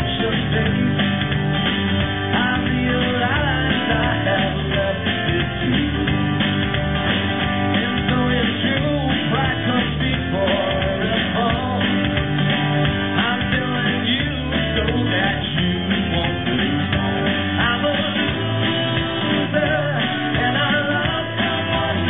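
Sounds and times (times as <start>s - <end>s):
acoustic guitar: 0.0s - 22.0s
bass guitar: 0.0s - 22.0s
drums: 0.0s - 22.0s
electric guitar: 0.0s - 22.0s.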